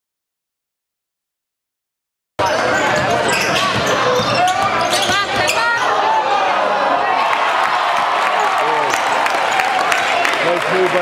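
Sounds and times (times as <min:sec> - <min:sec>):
voices echoing in gym: 0:02.4 - 0:07.2.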